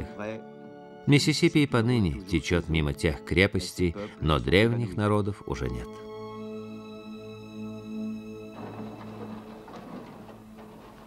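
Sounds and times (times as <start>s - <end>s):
canoes knocking and scraping: 8.4s - 11.0s.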